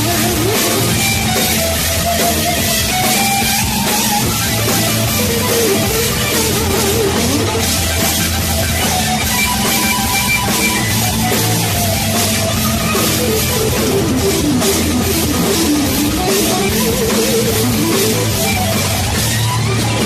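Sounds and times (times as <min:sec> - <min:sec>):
heavy rock music: 0:00.0 - 0:20.0.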